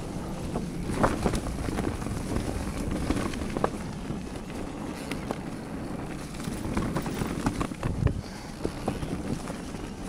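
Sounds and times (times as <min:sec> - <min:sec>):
bike clicking and rattling: 0:00.0 - 0:10.0
bike tyres rolling on dirt trail: 0:00.0 - 0:10.0
wind rushing over microphone: 0:00.0 - 0:10.0.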